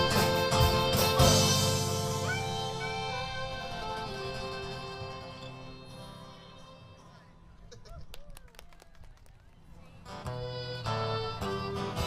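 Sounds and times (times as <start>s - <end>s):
faint voices: 2.1s - 10.9s.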